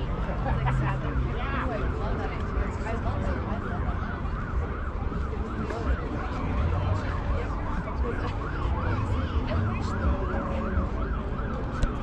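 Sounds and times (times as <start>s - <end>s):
emergency siren yelping: 0.1s - 12.0s.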